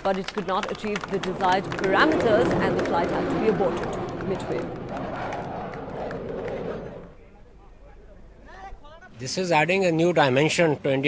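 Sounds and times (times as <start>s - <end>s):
scattered clicks: 0.0s - 7.2s
steady rushing noise: 0.0s - 8.3s
indistinct voices: 0.0s - 8.4s.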